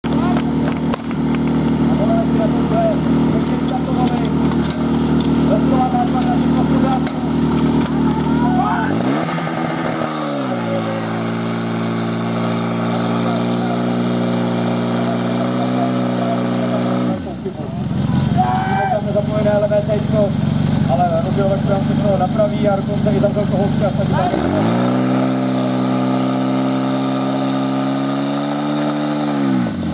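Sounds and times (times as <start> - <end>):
fire pump petrol engine running: 0.0 - 29.9
people shouting: 7.3 - 9.2, 18.1 - 19.1.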